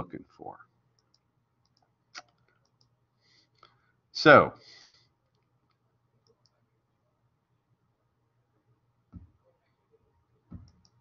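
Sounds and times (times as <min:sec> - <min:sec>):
faint steady hum: 0:00.0 - 0:11.0
computer mouse clicks: 0:01.0 - 0:03.0, 0:05.3 - 0:06.6, 0:10.5 - 0:11.0.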